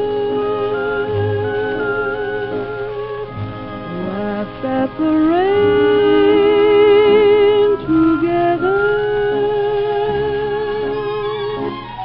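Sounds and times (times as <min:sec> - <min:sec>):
melody holding note with vibrato: 0:00.0 - 0:12.0
orchestral dance-band music on radio: 0:00.0 - 0:12.0.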